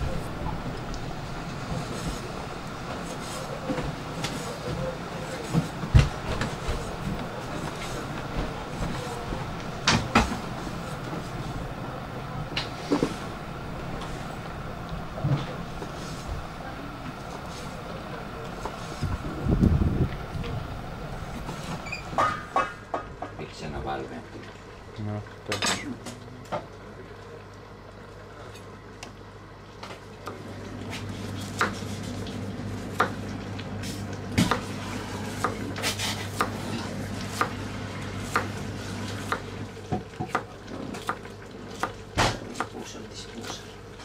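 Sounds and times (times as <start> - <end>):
knife chopping on wooden board: 34.4 - 34.7, 35.4 - 36.7, 38.2 - 38.5.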